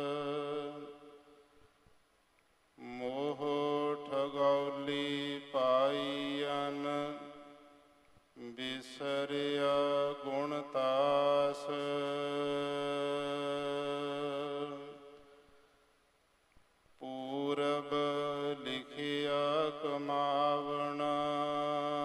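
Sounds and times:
person chanting melodically: 0.0 - 1.4, 2.8 - 7.7, 8.4 - 15.4, 17.0 - 22.0.

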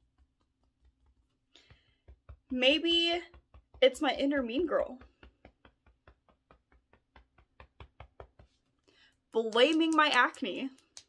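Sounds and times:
rapid fingertip tapping on body: 0.0 - 11.0.

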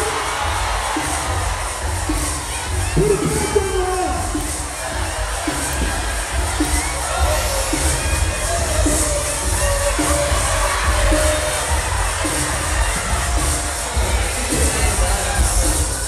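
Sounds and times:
concert crowd cheering: 0.0 - 16.0.

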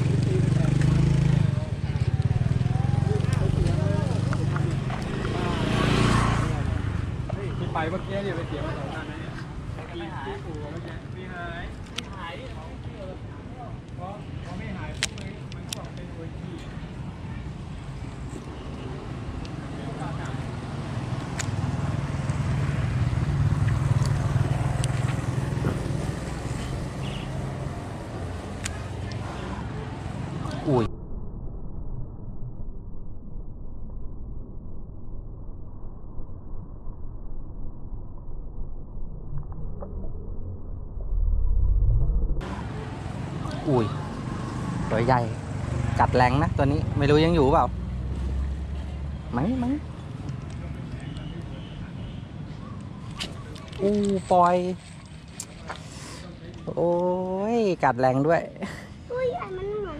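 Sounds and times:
vehicle engine passing by: 0.0 - 9.4, 19.0 - 30.9, 41.4 - 51.2
voices: 0.0 - 30.9, 42.4 - 59.9.

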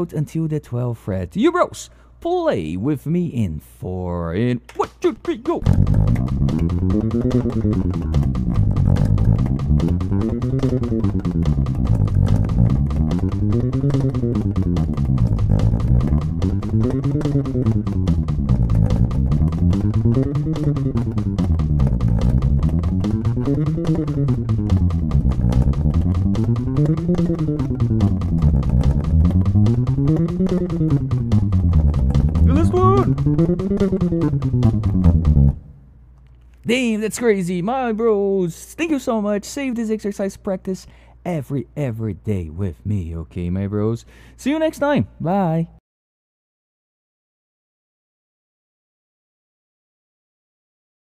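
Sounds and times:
electric bass played fingerstyle: 5.1 - 36.2.

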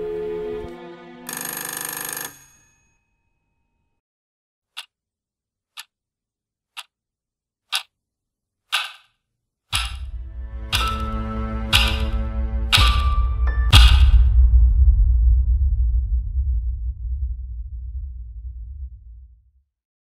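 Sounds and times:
music: 0.0 - 1.3, 9.8 - 18.9
clock ticking: 4.8 - 5.0, 5.8 - 6.0, 6.8 - 7.0, 7.7 - 8.0, 8.7 - 14.3.

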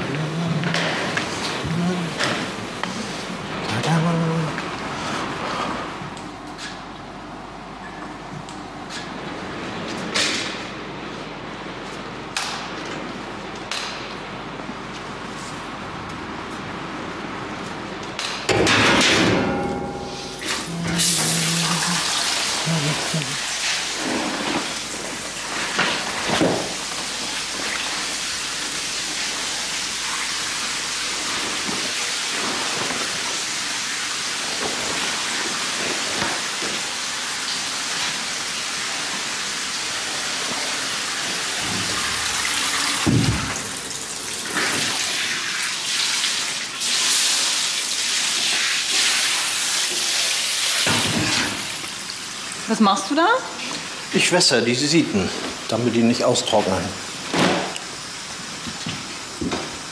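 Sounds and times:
water running with a hiss: 20.5 - 59.9.

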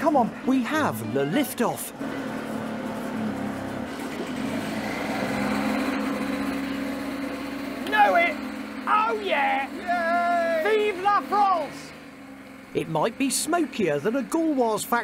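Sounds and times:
moped engine running: 0.0 - 15.0
man shouting: 7.8 - 11.9.

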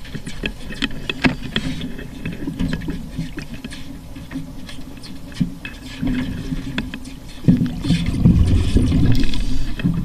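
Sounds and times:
underwater rumbling water: 0.0 - 10.0.

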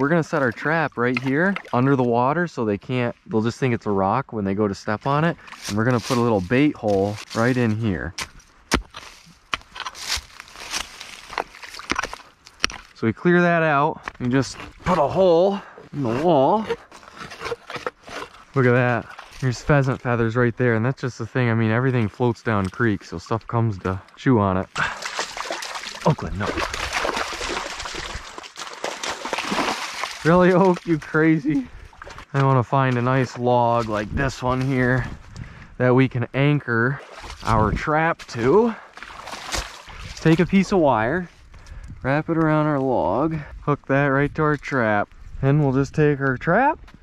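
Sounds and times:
soil and dry leaves scraping: 5.0 - 13.0, 14.0 - 20.4, 25.0 - 31.5, 32.9 - 35.3, 37.0 - 41.6
digging tool striking dirt: 5.5 - 13.0
dog splashing through water: 24.8 - 30.8, 39.0 - 40.2.

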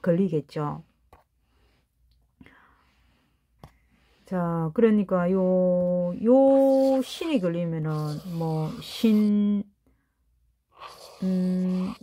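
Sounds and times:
faint breath: 1.4 - 4.4.

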